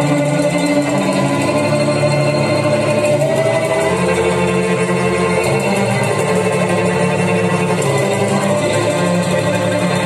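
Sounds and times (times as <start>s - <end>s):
cello playing long notes: 0.0s - 10.0s.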